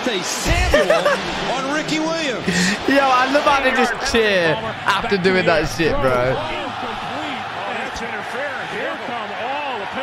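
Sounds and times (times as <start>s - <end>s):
sports commentator talking: 0.0s - 10.0s
stadium crowd noise: 0.0s - 10.0s.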